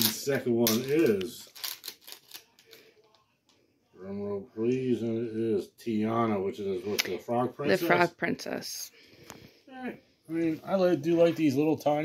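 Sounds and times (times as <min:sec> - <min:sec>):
packaging crinkling and clicking: 0:00.0 - 0:02.8.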